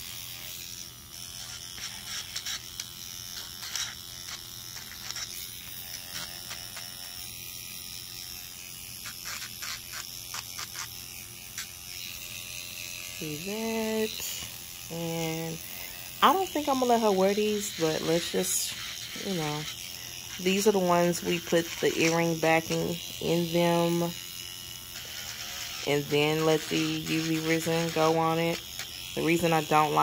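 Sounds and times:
scratchy grinding on resin: 0.0 - 7.3, 8.5 - 12.2, 13.1 - 30.0
electric nail drill running: 0.0 - 30.0.

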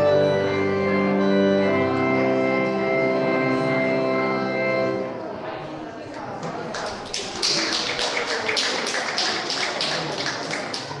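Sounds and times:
faint music: 0.0 - 11.0.

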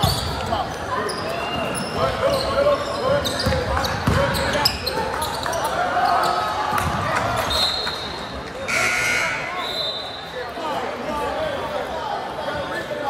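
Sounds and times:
sneakers squeaking: 0.0 - 10.2
voices echoing in hall: 0.0 - 13.0.

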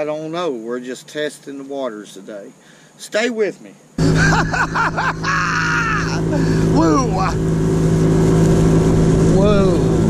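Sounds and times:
outboard motor running: 4.0 - 10.0
man whooping: 4.2 - 7.3.

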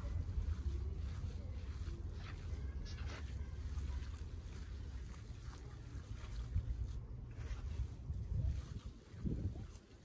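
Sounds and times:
wet squelches of meat kneaded: 0.0 - 10.0
wind rumbling on microphone: 0.0 - 10.0.

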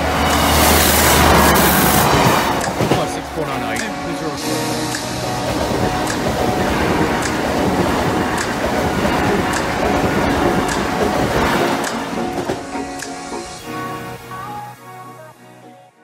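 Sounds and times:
train passing at speed: 0.0 - 14.5
background music: 0.0 - 16.0.

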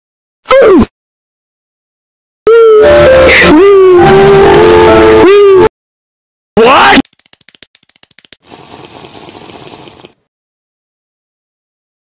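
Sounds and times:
rapid clicking: 7.0 - 10.2.

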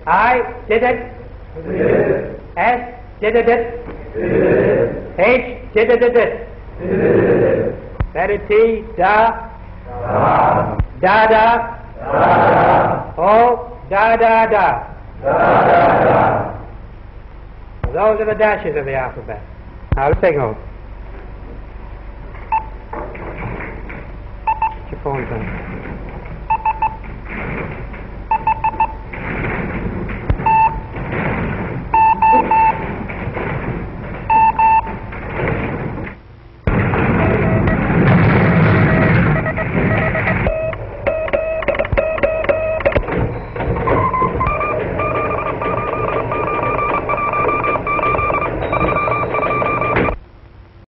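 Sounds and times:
overlapping steady tones and noise: 15.0 - 50.8
morse code beeps: 22.5 - 22.8, 24.4 - 24.9, 26.5 - 27.0, 28.3 - 29.1, 30.3 - 31.0, 31.9 - 33.0, 34.3 - 35.0, 37.2 - 50.2.

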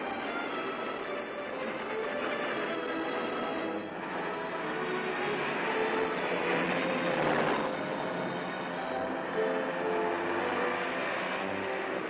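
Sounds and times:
engine noise: 0.0 - 12.0
film score music: 0.0 - 12.0.

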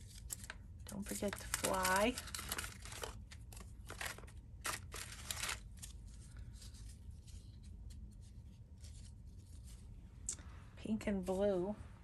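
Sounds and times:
paper and card rustling: 0.0 - 10.0.

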